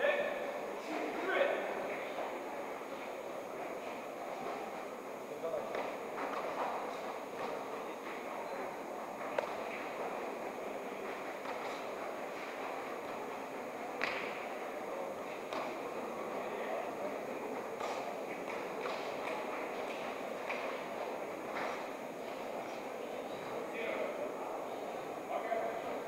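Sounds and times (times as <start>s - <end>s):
crowd murmur: 0.0s - 26.0s.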